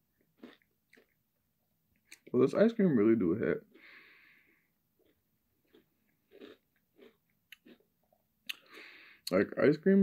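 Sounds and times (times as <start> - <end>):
soft chewing: 0.2 - 1.2, 5.0 - 8.8
breath: 3.8 - 4.7, 8.6 - 9.3
mouth clicks: 8.4 - 9.4.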